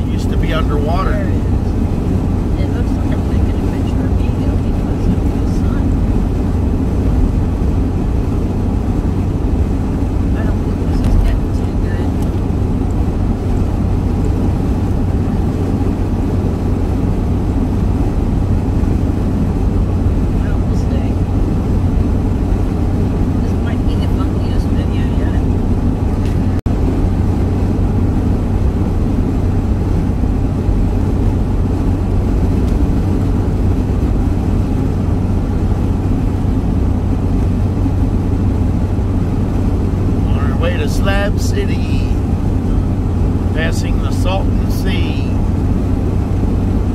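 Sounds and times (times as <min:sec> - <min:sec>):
vehicle road and engine rumble: 0:00.0 - 0:46.9.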